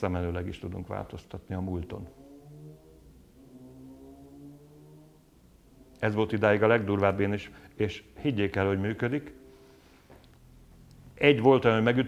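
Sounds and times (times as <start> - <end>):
low sustained pitched tones: 0.0 - 9.8.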